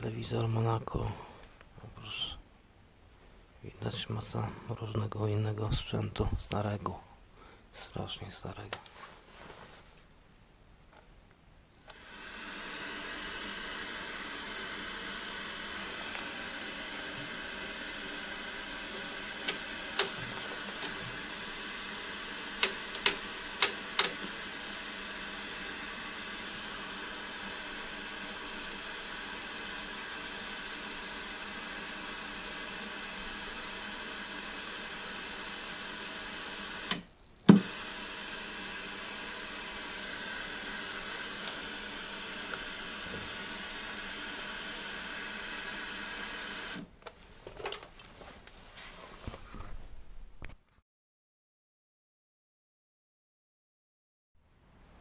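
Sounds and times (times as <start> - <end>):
high-pitched transformer whine: 11.7 - 46.9
sharp clicks: 22.6 - 24.2.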